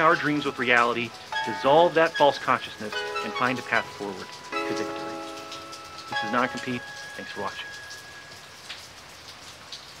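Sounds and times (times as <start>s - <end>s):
steady rain: 0.0s - 10.0s
lingering high note: 2.9s - 8.5s.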